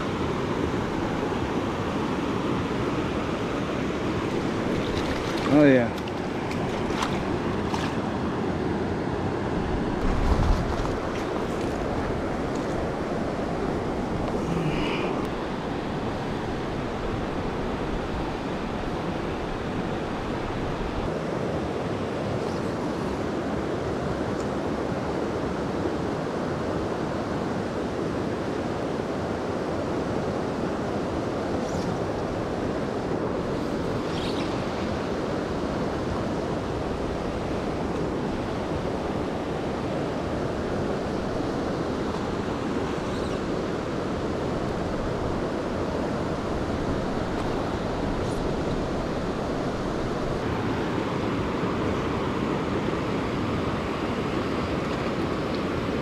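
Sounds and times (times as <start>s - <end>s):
river water rushing over cascade: 0.0s - 56.0s.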